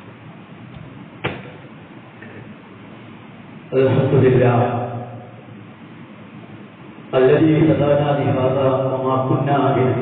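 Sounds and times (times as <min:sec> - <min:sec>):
sharp knock: 0:01.2 - 0:01.6.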